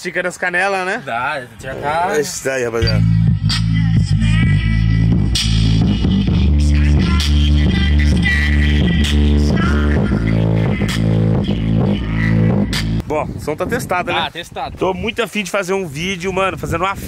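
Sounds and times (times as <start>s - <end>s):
deep sustained bass notes: 2.8s - 13.0s.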